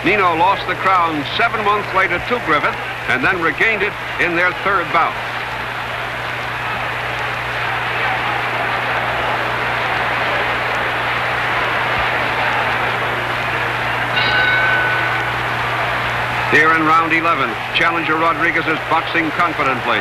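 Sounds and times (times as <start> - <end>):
crowd voices din: 0.0 - 20.0
low recording hum: 0.0 - 20.0.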